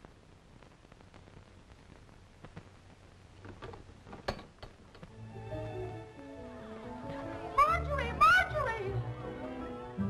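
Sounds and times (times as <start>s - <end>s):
dramatic orchestral music with strings: 5.2s - 10.0s.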